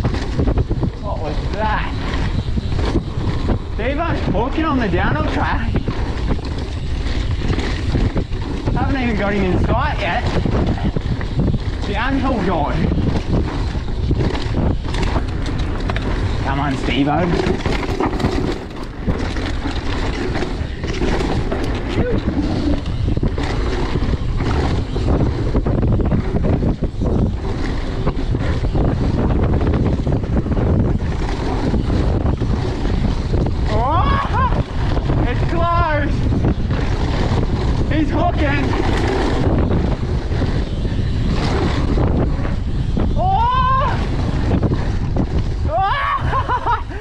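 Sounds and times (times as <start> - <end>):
tyres rattling over dirt trail: 0.0 - 47.0
wind rushing over camera: 0.0 - 47.0.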